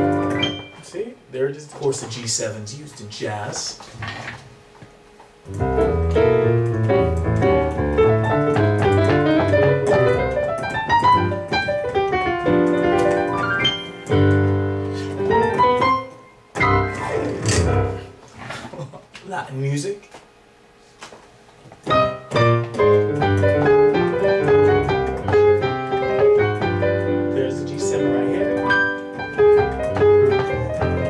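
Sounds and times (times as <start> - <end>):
electric piano playing jazz: 0.0 - 1.0, 5.4 - 18.3, 21.8 - 31.0.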